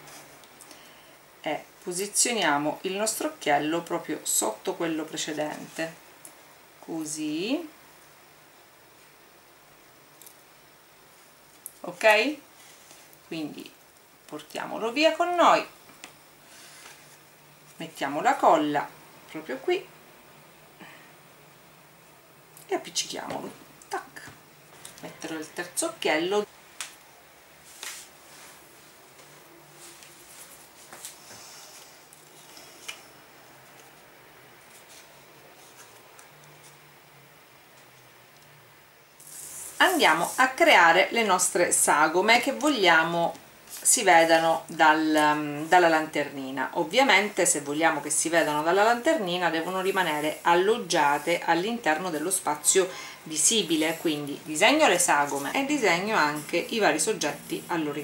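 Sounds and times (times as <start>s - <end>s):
low steady hum: 0.0s - 58.0s
soft hiss: 0.0s - 58.0s
woman speaking: 1.4s - 6.0s, 6.8s - 7.8s, 11.8s - 12.5s, 13.3s - 15.8s, 17.8s - 20.0s, 22.6s - 24.4s, 25.0s - 26.5s, 39.8s - 58.0s.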